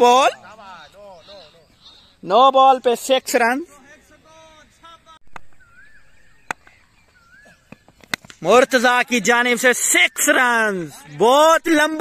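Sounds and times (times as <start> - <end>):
faint wavering whistle-like call: 5.5 - 6.5
cricket bat cracking ball: 6.4 - 6.8, 7.7 - 8.5.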